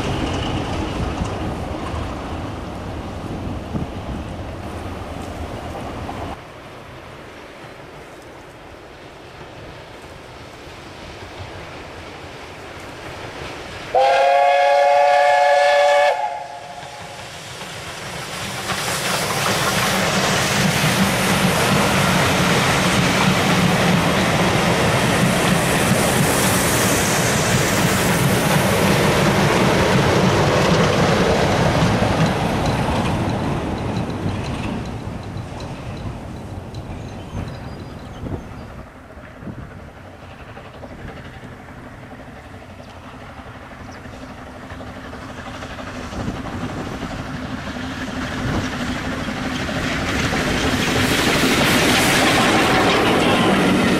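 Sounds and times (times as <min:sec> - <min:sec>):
train coaches rumbling past: 0:00.0 - 0:53.9
locomotive horn blast: 0:13.9 - 0:17.2.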